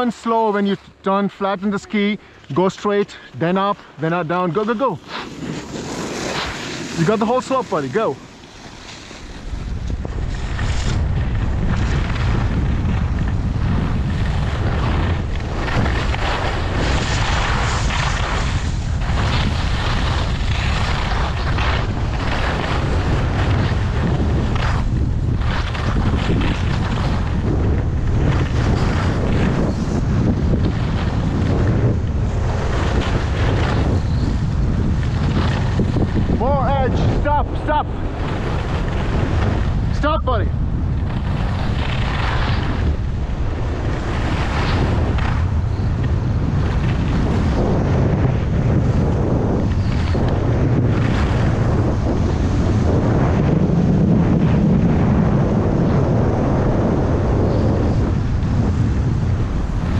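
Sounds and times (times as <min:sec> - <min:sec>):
skis scraping on packed snow: 0:00.0 - 0:59.9
wind buffeting microphone: 0:00.0 - 0:59.9.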